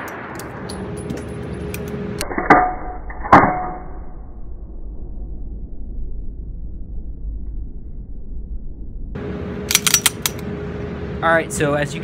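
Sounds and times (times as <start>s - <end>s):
steady background hum: 0.0s - 12.0s
low muffled rumble: 4.0s - 12.0s
pistol metallic clicks: 9.7s - 10.4s.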